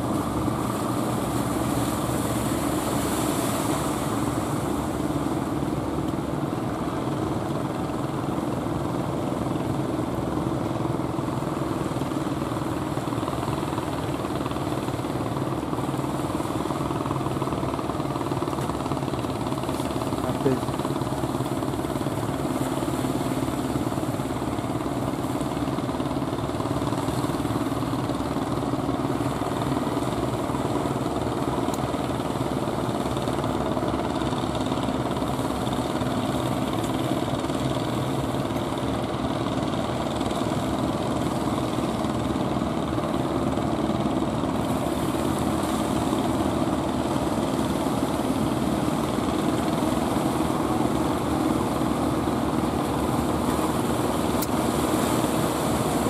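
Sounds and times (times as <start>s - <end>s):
boat engines running: 0.0s - 56.0s
waves breaking: 0.0s - 56.0s.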